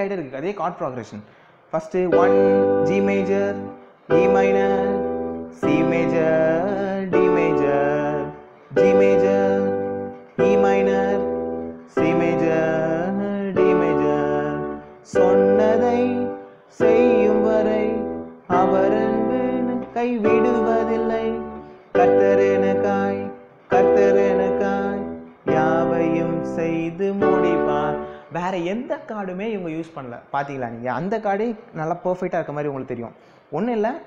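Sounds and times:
keyboard piano chords: 2.0 - 29.7.

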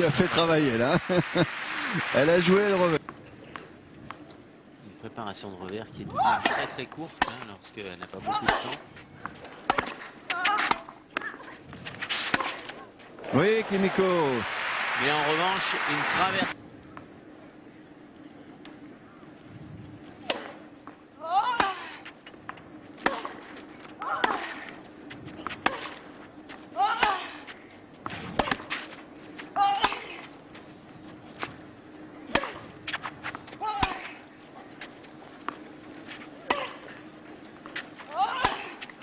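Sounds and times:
tennis ball hit by rackets: 9.7 - 11.4, 12.0 - 13.3, 20.2 - 20.6, 23.0 - 24.7, 25.4 - 26.0, 28.0 - 28.9, 32.3 - 34.2, 36.4 - 36.9.

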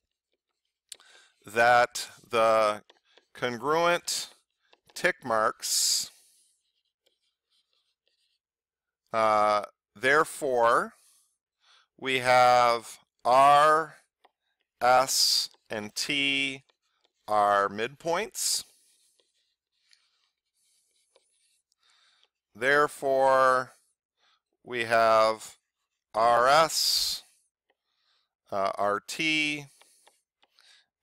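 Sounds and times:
stylus scratching on tablet screen: 0.0 - 8.8, 11.0 - 22.5, 23.3 - 31.0.

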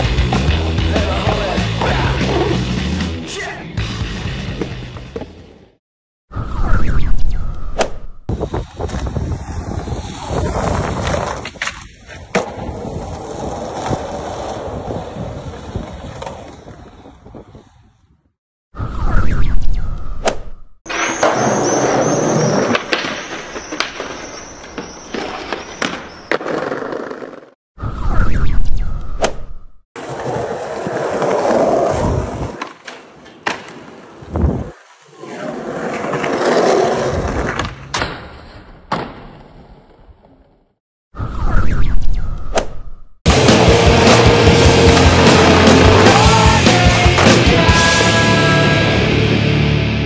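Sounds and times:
music: 0.0 - 5.2, 43.3 - 50.0
skateboard wheels rolling on concrete: 0.0 - 5.8, 8.3 - 18.3, 20.9 - 27.6, 30.0 - 40.8, 43.3 - 50.0.

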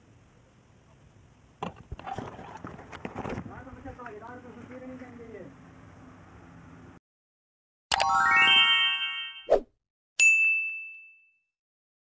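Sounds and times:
bell ding: 10.2 - 11.6.

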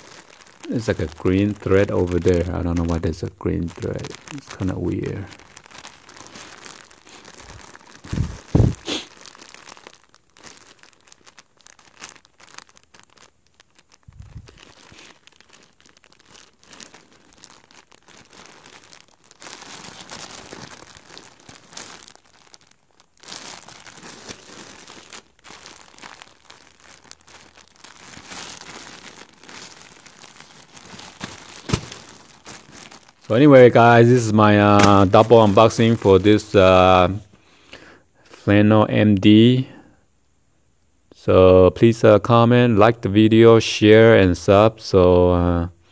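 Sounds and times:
plastic bags crinkling: 0.0 - 37.4.

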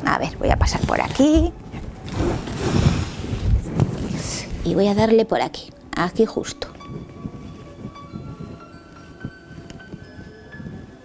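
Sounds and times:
clothing rustling on microphone: 0.6 - 5.2, 6.5 - 11.0.

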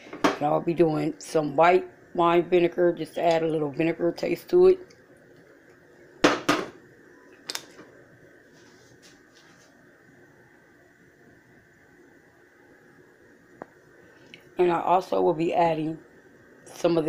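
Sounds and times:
faint steady background noise: 0.0 - 17.0
sharp knocks of kitchenware: 6.2 - 6.7.

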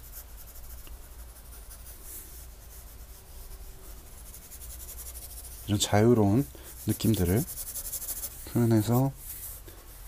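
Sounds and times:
pen nib scratching on paper: 0.0 - 5.8, 6.8 - 9.1.

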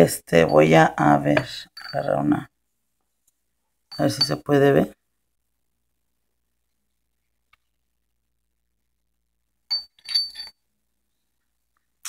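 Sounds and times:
glitter and beads clinking: 1.6 - 2.4, 9.7 - 10.6.

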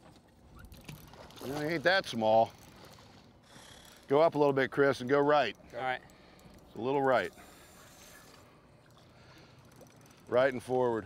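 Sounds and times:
low boat hum: 0.0 - 11.0.

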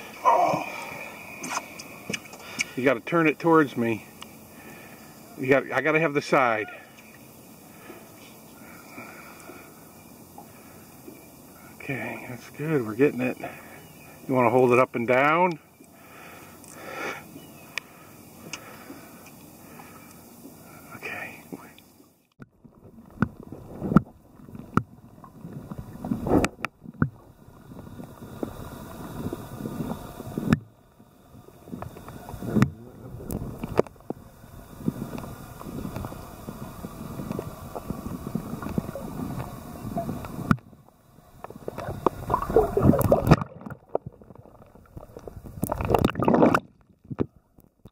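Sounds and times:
steady background hiss: 0.0 - 22.4, 23.0 - 46.6
water sloshing underwater: 15.5 - 47.9.

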